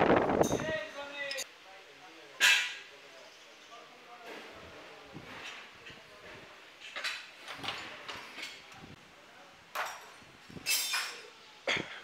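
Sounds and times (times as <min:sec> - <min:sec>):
hand tools clanking on metal: 0:09.8 - 0:11.2.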